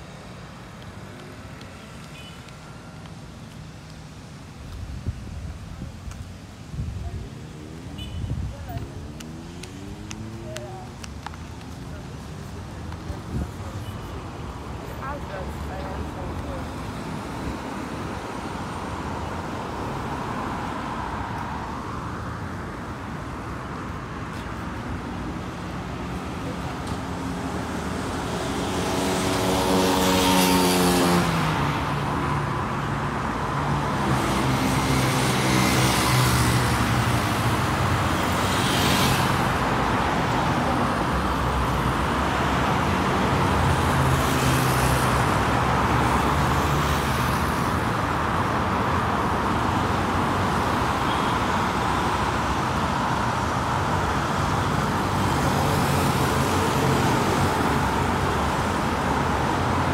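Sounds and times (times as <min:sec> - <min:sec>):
cars passing on road: 0:00.0 - 0:59.9.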